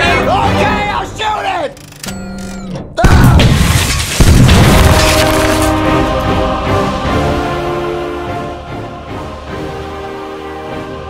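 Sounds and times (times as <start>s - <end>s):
music: 0.0s - 11.0s
sharp crash: 3.1s - 6.2s
glass shattering: 3.3s - 5.8s.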